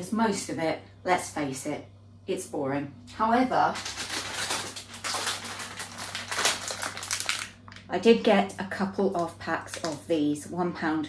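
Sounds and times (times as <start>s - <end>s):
plastic wrapper crinkling: 3.7s - 7.9s, 9.2s - 10.1s.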